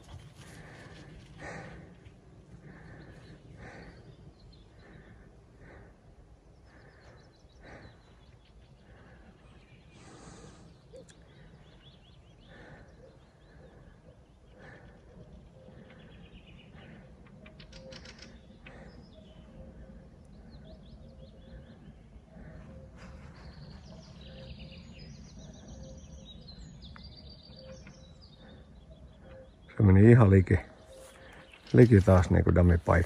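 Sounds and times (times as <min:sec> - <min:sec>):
faint birdsong: 0:00.0 - 0:33.0.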